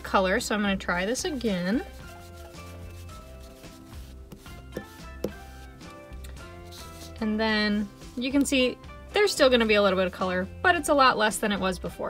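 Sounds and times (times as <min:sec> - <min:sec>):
soft background music: 0:00.0 - 0:12.0
brush scrubbing on a pad: 0:00.9 - 0:08.7.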